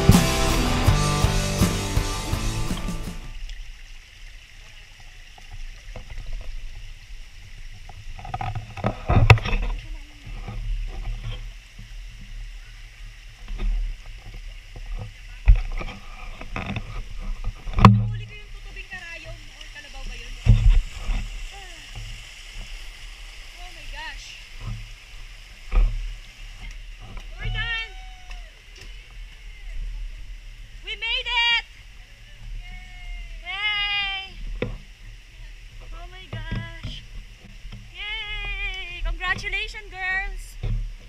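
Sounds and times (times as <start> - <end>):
music: 0.0 - 3.3
loud low thumps: 0.0 - 3.4
stream running over rocks: 0.0 - 41.0.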